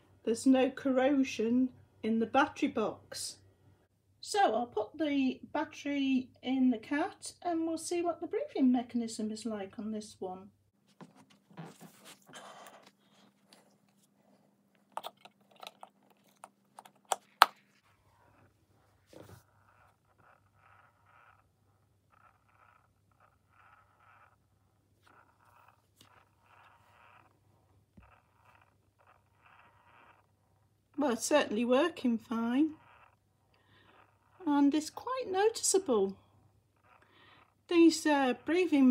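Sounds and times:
battery clicks and knocks: 0:14.9 - 0:17.6
toy motor hum and whirring: 0:19.4 - 0:24.4, 0:25.0 - 0:27.3, 0:28.0 - 0:35.8.

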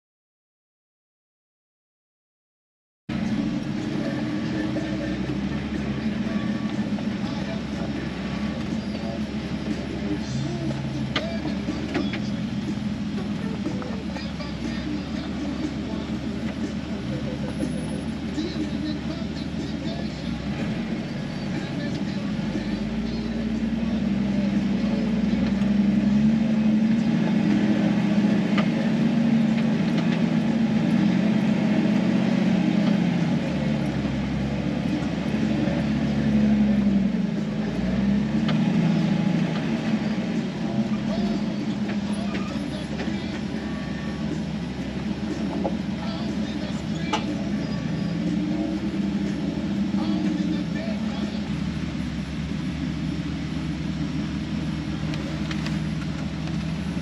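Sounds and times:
engine heard from inside cab: 0:03.1 - 0:57.0.

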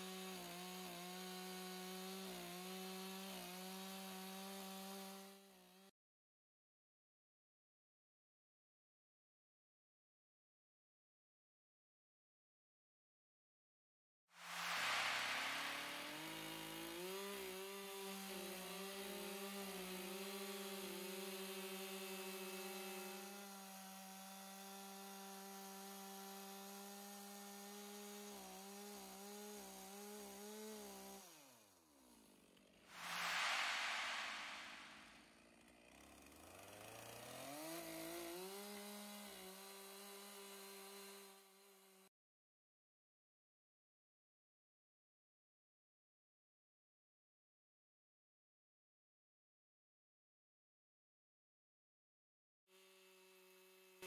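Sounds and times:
chainsaw cutting log: 0:00.0 - 0:05.9, 0:14.4 - 0:42.1, 0:52.7 - 0:54.0.

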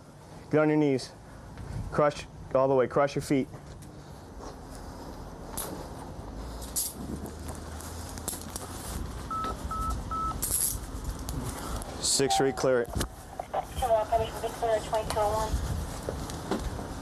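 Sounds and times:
short electronic beeps: 0:09.3 - 0:10.4.

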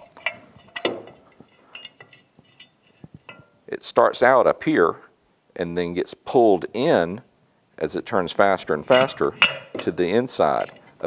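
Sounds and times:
metallic clicks and knocks: 0:00.0 - 0:03.6, 0:08.9 - 0:10.9.

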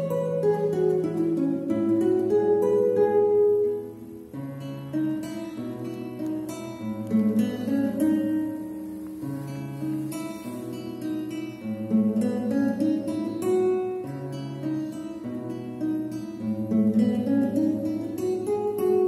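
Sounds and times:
classical guitar fingerstyle: 0:00.0 - 0:19.0.

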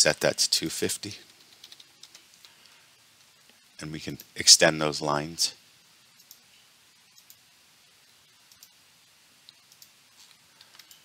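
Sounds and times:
computer keyboard keystrokes: 0:01.3 - 0:02.6.

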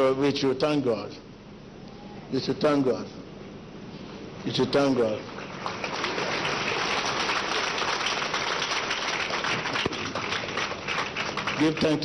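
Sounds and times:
congregation clapping: 0:04.4 - 0:12.0.

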